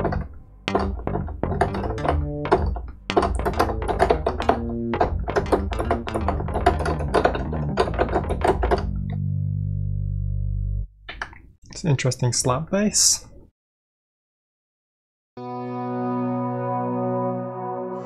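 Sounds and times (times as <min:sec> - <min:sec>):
synthesizer slap bass notes: 0:00.0 - 0:10.8.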